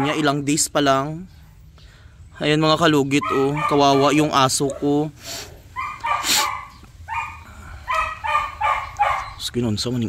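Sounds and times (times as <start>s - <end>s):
dog whimpering: 3.1s - 5.0s, 5.7s - 9.4s
breathy noises: 5.1s - 9.0s.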